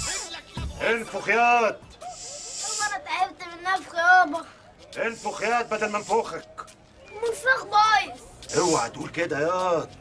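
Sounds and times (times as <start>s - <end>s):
air hissing: 2.1s - 2.9s.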